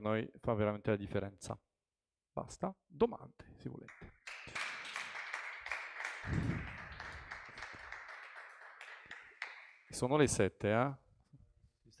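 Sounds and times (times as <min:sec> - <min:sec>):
small audience applauding: 0:03.9 - 0:10.0.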